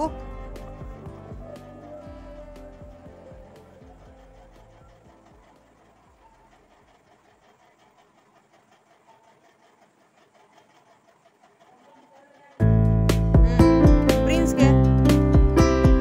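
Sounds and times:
quiet background music: 0.0 - 10.7, 11.4 - 16.0.

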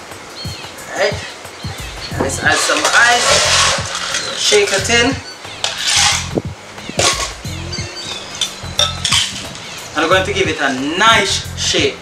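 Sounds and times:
ice cubes clinking in metal shaker: 2.5 - 4.8.

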